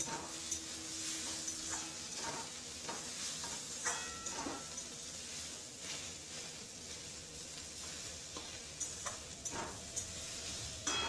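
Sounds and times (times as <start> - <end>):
metal spatula scraping a pan: 0.0 - 7.0
onions sizzling in a pan: 0.0 - 11.0
spatula clinking on pan: 1.3 - 5.0.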